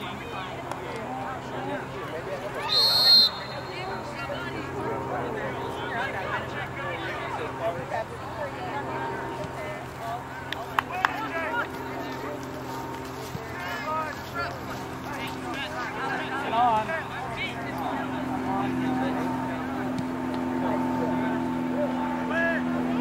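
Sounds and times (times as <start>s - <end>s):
steady engine-like hum: 0.0s - 23.0s
distant shouts of players: 2.5s - 4.6s.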